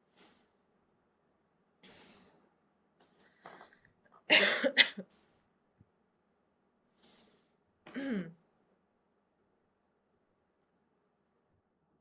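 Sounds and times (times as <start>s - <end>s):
woman coughing: 4.3s - 5.1s, 7.9s - 8.4s.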